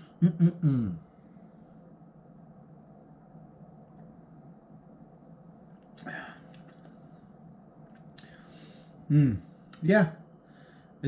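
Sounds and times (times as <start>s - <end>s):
faint steady hum: 0.0s - 11.0s
brief breath: 8.2s - 9.0s.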